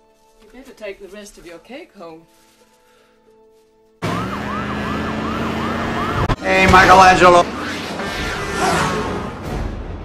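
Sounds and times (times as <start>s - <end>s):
siren wailing: 4.0s - 9.3s
traffic engine hum: 4.0s - 9.5s.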